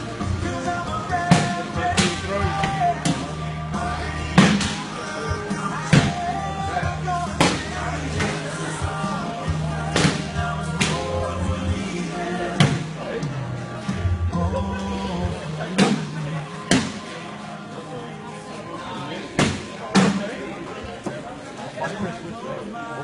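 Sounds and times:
background music: 0.0 - 20.6
people chatting: 0.4 - 23.0.

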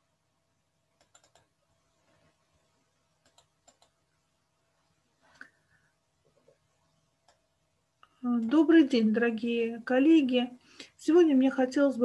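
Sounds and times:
faint computer clicking: 1.0 - 1.6, 3.2 - 4.0, 6.2 - 8.6.

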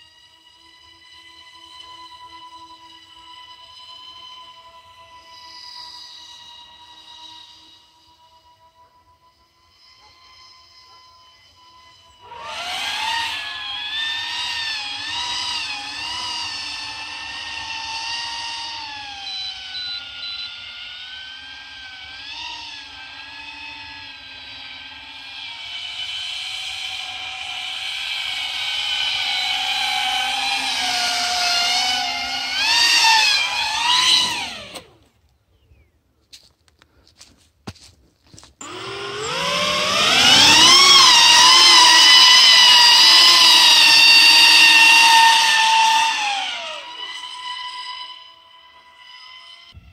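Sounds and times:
electric motors and propellers whining: 0.0 - 49.9.

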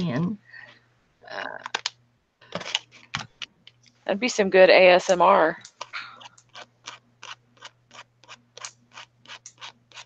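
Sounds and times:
marker scratching on paper: 6.5 - 10.0.

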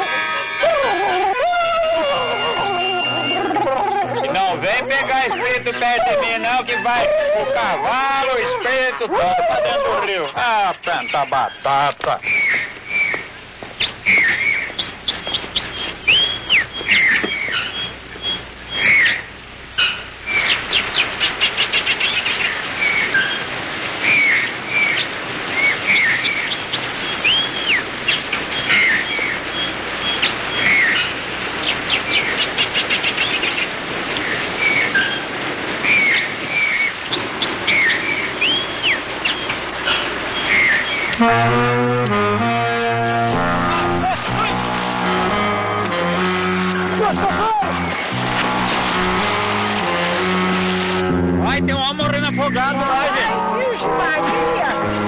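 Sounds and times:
guitar music: 0.0 - 10.3, 41.1 - 55.0
steady background hiss: 0.0 - 55.0
birds chirping and trilling: 0.3 - 41.2, 47.7 - 49.8.

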